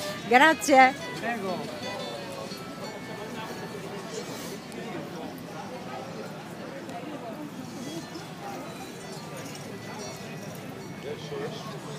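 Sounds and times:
people talking indistinctly: 0:00.0 - 0:11.9.

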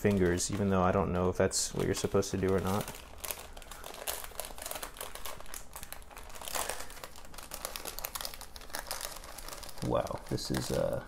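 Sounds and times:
paper crinkling and rustling: 0:00.0 - 0:11.0.

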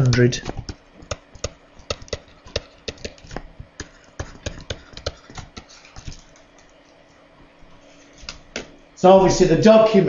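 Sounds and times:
stylus clicking on a tablet: 0:00.1 - 0:05.8.

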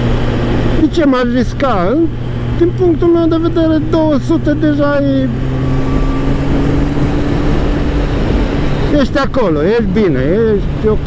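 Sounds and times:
motorcycle engine cruising: 0:00.0 - 0:11.0
wind rush over microphone: 0:00.0 - 0:11.0.

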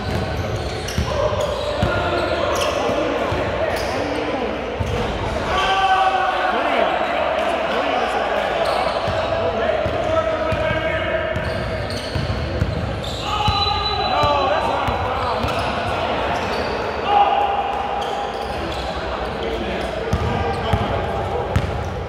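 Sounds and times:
players calling out: 0:00.4 - 0:21.0.

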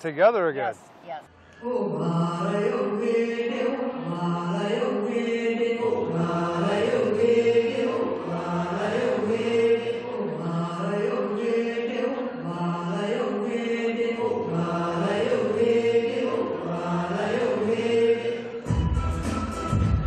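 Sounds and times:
music with heavy bass: 0:18.7 - 0:20.0.

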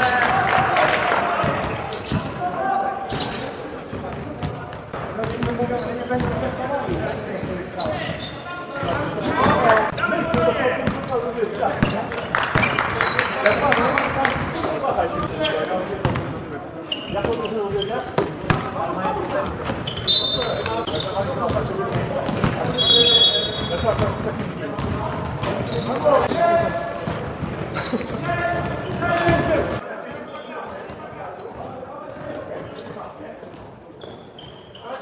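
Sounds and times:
sneaker squeaks: 0:00.0 - 0:35.0
basketball bouncing on court: 0:01.4 - 0:02.4, 0:03.1 - 0:08.2, 0:08.8 - 0:13.2, 0:16.0 - 0:16.3, 0:18.1 - 0:29.8.

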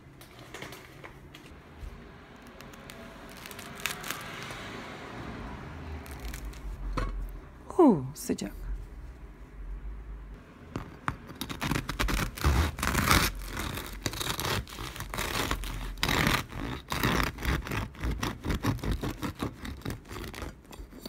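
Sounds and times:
bread knife sawing crusty loaf: 0:11.4 - 0:21.0.

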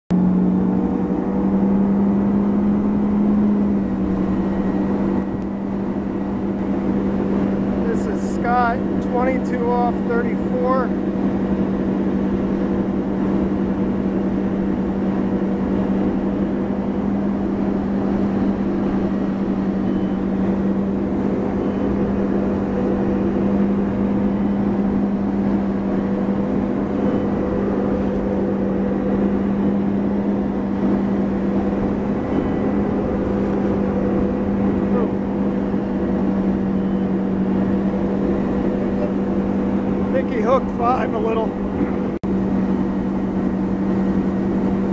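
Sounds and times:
boat engine drone: 0:00.1 - 0:44.9.

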